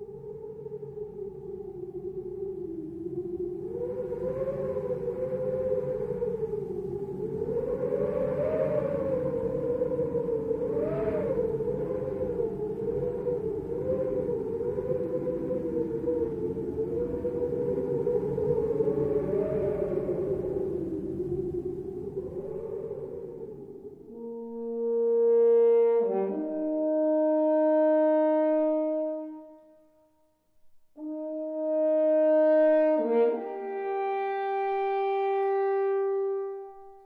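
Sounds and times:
french horns sustained tones: 24.0s - 30.1s, 31.0s - 37.0s.

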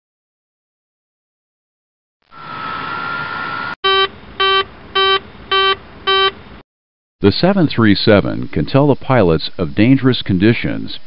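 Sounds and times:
warning horn short beeps: 3.8s - 6.4s.

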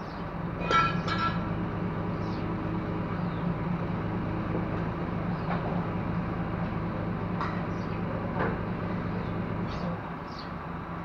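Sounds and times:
diesel engine idling: 0.0s - 11.0s
light metallic knocks: 0.6s - 1.5s.

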